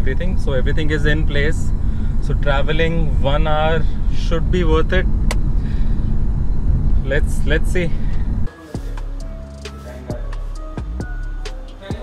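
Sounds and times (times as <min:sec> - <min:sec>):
man talking: 0:00.0 - 0:05.1, 0:07.0 - 0:10.5, 0:11.6 - 0:12.0
car engine and tyre rumble: 0:00.0 - 0:11.8.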